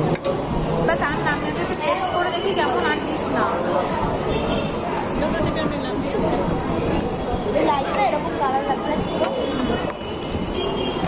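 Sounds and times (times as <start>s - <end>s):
restaurant voices: 0.0s - 11.0s.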